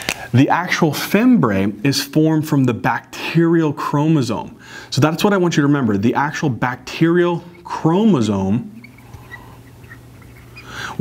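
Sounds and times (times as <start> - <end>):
low electrical hum: 0.0 - 11.0
marker squeaking on whiteboard: 6.8 - 11.0
breath drawn in: 10.6 - 11.0.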